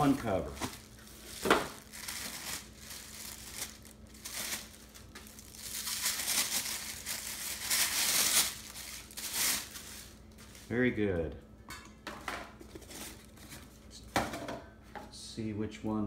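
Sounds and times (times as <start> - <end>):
plastic wrapping crinkling: 0.0 - 10.9.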